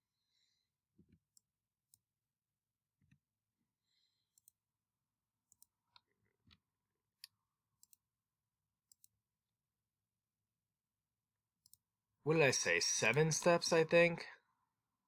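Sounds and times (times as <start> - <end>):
faint computer mouse clicks: 4.3 - 4.6.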